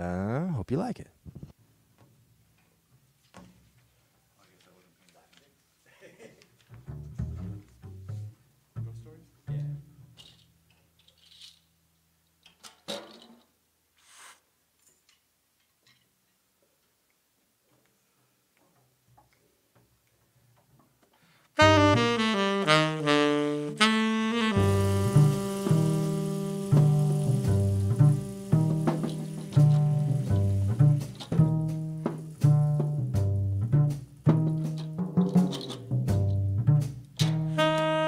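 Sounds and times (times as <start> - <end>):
plucked double bass: 6.7 - 10.0, 21.6 - 37.8
tenor saxophone run: 21.6 - 30.6, 37.5 - 38.0
cymbals and drums: 21.6 - 38.0.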